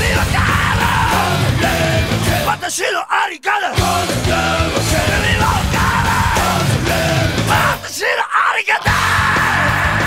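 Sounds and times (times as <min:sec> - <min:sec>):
thrash metal band: 0:00.0 - 0:02.8, 0:03.7 - 0:08.2, 0:08.8 - 0:10.0
shouted vocal: 0:00.0 - 0:10.0.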